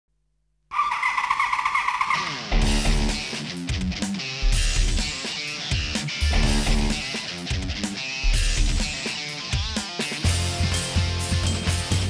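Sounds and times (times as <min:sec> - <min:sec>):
motorcycle tyre squealing: 0:00.7 - 0:02.6.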